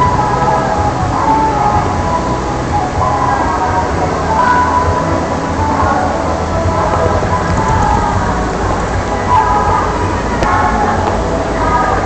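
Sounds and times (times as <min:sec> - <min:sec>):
low rumble: 0:00.0 - 0:12.0
water rushing: 0:00.0 - 0:12.0.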